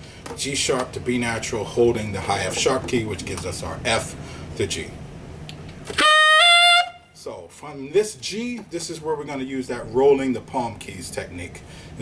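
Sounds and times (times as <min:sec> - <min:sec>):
tenor saxophone high notes: 0:05.9 - 0:07.2.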